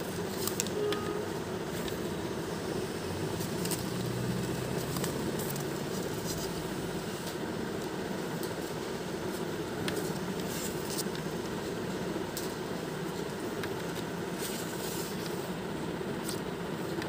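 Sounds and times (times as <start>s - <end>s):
steady background noise: 0.0s - 17.0s
paper pages turning: 0.3s - 1.0s, 3.6s - 7.4s, 9.9s - 11.3s.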